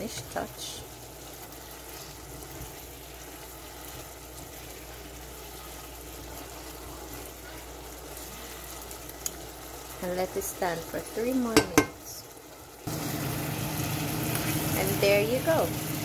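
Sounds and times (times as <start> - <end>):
sauce simmering in saucepan: 0.0 - 16.0.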